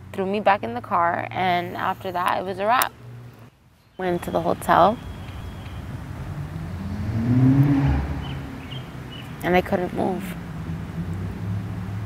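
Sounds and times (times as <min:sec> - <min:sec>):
motor vehicle passing by: 0:04.4 - 0:12.0.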